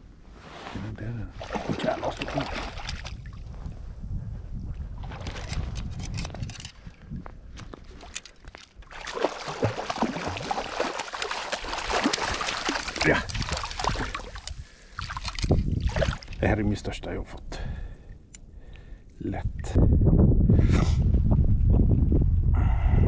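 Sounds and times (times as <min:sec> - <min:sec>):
wind rumble on microphone: 0:00.0 - 0:08.2, 0:13.0 - 0:16.8, 0:19.3 - 0:23.0
water splashing and sloshing: 0:00.4 - 0:03.8, 0:04.7 - 0:16.6.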